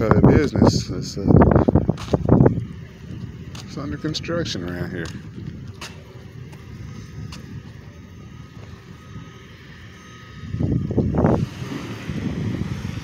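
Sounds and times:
street noise rumble: 0.0s - 13.0s.

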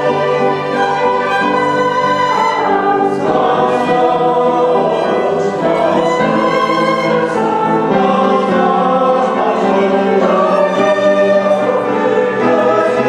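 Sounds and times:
choir singing held notes: 0.0s - 13.0s
piano: 0.0s - 13.0s
violins: 0.0s - 13.0s.

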